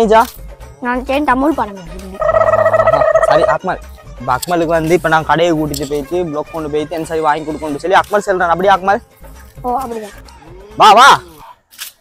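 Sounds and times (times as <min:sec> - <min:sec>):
steady high tone: 0:02.2 - 0:03.6.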